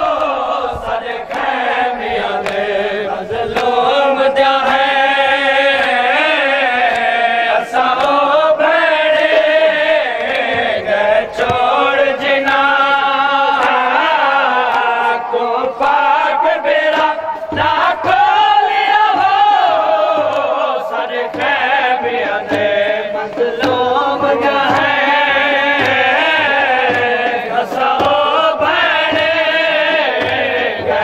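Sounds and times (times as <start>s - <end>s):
men chanting a lament: 0.0s - 31.0s.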